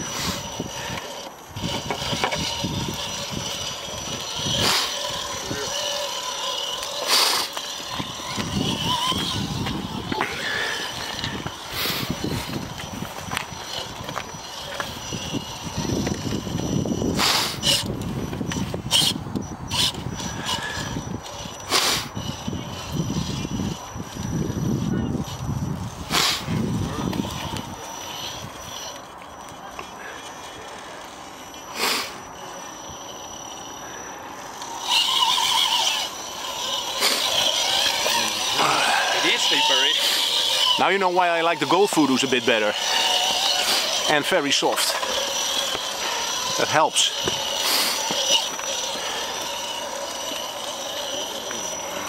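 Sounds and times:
toy car motor whirring: 0.0s - 52.0s.

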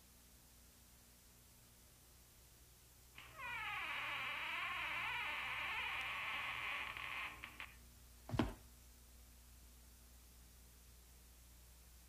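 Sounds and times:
door creaking screech: 3.2s - 7.8s.

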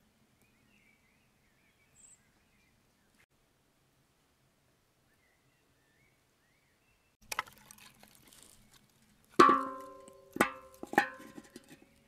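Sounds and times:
metal bowl ringing: 9.4s - 11.6s
wood knocking in metal bowl: 9.4s - 12.0s.

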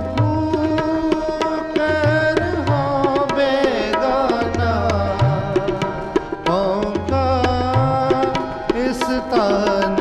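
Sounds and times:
harmonium chords: 0.0s - 10.0s
tabla rhythm: 0.0s - 10.0s.

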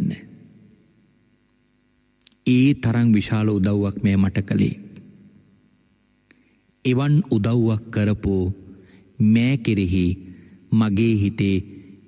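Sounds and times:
man preaching: 0.0s - 0.4s, 2.4s - 4.9s, 6.8s - 11.9s.

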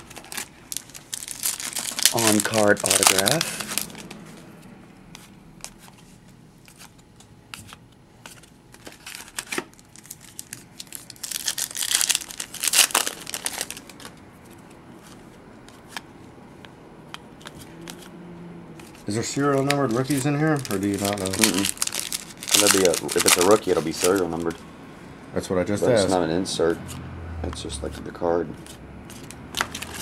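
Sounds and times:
foil wrapper tearing and crinkling: 0.0s - 4.2s, 8.8s - 14.2s, 18.8s - 24.6s, 29.1s - 30.0s.

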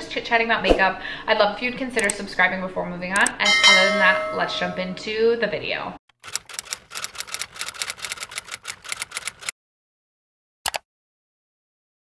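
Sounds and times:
keystroke clicks: 2.0s - 2.2s, 6.2s - 9.5s.

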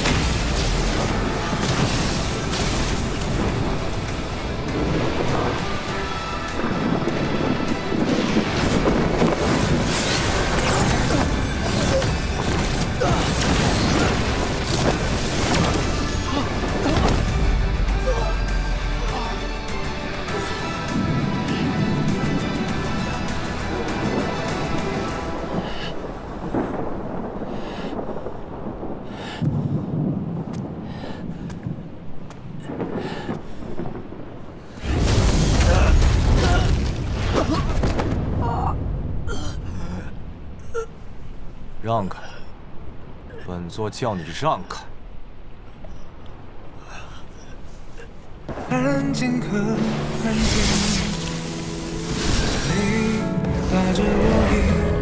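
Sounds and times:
dramatic music score: 0.0s - 28.9s, 48.5s - 55.0s
thunder-like rumbling: 0.0s - 40.6s.

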